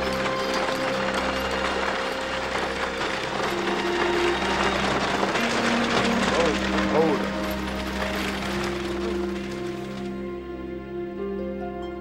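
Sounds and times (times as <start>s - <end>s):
buggy wheels rattling: 0.0s - 10.4s
horse hooves clattering: 0.0s - 10.4s
background music: 0.0s - 12.0s.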